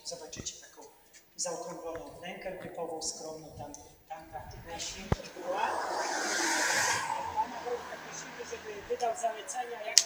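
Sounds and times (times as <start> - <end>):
car passing on road: 3.4 - 10.0.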